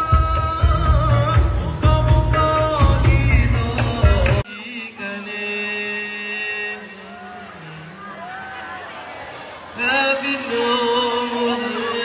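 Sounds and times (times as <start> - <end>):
man singing over loudspeakers: 0.0 - 12.0.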